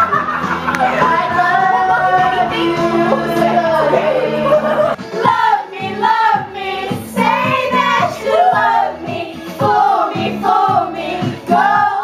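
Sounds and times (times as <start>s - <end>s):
women singing into microphone: 0.7s - 12.0s.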